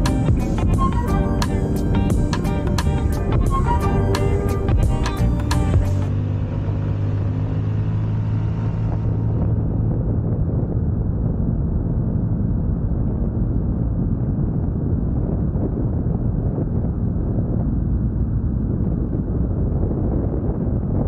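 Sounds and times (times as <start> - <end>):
wind rushing over microphone: 0.0 - 21.0.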